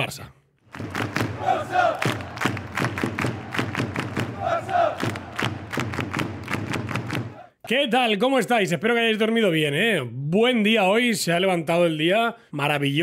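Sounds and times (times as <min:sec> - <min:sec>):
crowd shouting and chanting: 0:00.8 - 0:06.1, 0:07.0 - 0:07.6.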